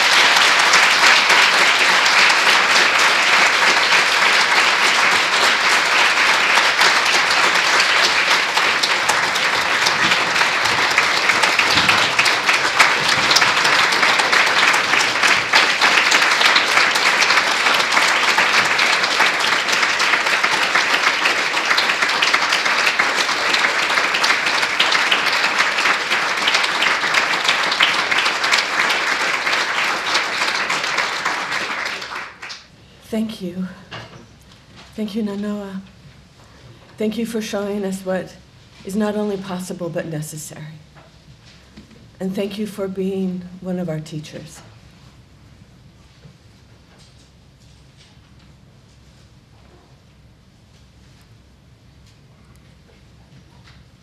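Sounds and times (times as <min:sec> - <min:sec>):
audience applauding: 0:00.0 - 0:32.7.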